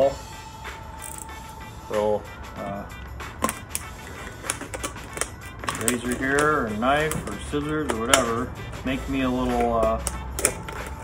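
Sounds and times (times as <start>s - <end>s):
plastic bottle clicking and crackling: 3.4s - 8.3s.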